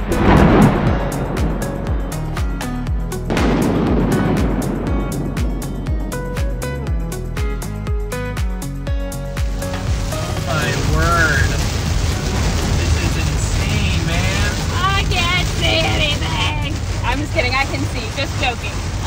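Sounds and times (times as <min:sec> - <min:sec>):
car driving through heavy rain: 0:00.0 - 0:19.0.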